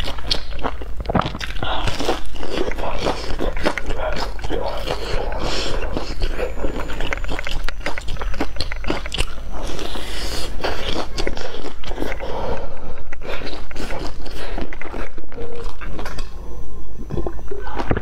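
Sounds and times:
crunchy chewing: 0.0 - 16.4.

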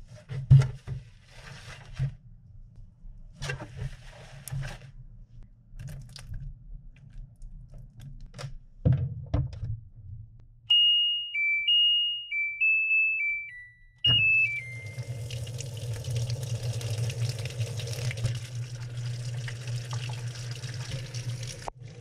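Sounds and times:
washing machine start-up beeps: 10.7 - 15.6.

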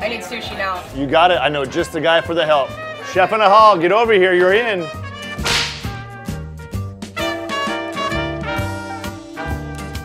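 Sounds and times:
upbeat background music: 0.0 - 10.0
whip-crack swoosh: 5.4 - 6.2.

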